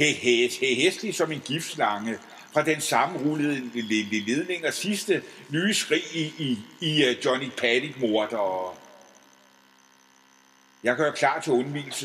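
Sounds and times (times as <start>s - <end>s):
man speaking: 0.0s - 8.8s, 10.8s - 12.0s
electrical hum: 0.0s - 12.0s.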